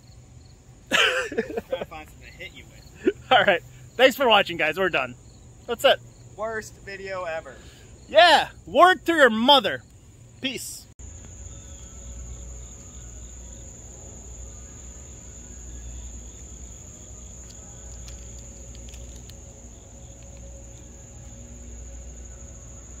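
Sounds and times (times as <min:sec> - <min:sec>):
insects trilling: 0:00.0 - 0:23.0.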